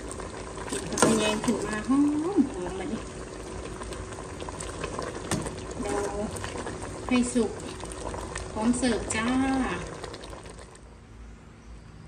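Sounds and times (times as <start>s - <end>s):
curry boiling and bubbling: 0.0s - 11.0s.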